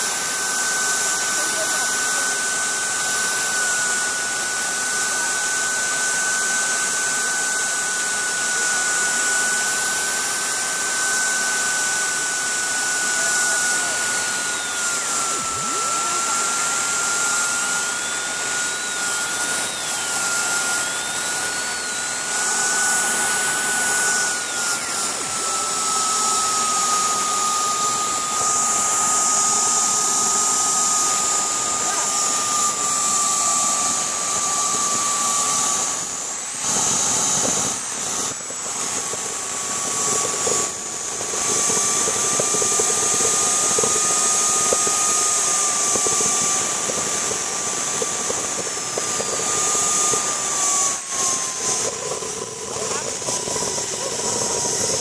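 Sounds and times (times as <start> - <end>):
jet turbine engine whine: 0.0 - 55.0.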